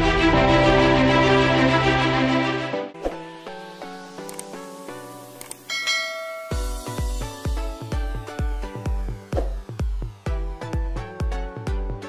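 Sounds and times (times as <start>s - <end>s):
music bed: 0.0s - 12.0s
bell ding: 5.7s - 7.1s.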